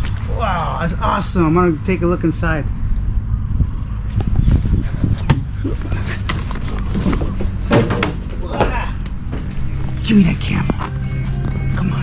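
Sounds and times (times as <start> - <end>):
steady low hum: 0.0 - 12.0
knocks and clatter: 5.1 - 9.6.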